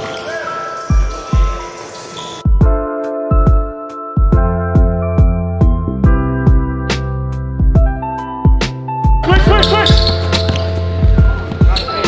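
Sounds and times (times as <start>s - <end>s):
music: 0.0s - 12.0s
player calling out: 9.2s - 10.2s
basketball bouncing on wood floor: 9.6s - 11.9s.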